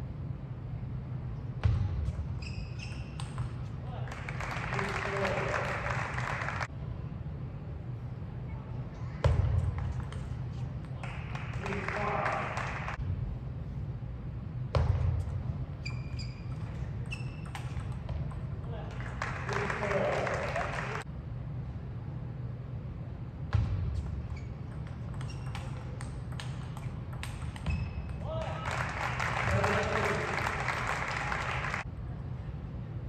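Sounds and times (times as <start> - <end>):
steady low hum: 0.0 - 33.0
crowd cheering: 4.0 - 6.7, 11.0 - 13.0, 18.9 - 21.0, 28.2 - 31.9.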